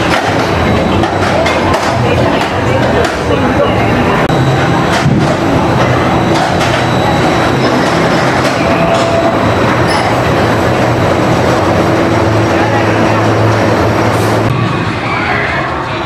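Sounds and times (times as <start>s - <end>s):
roller coaster wheels rumbling: 0.0s - 16.0s.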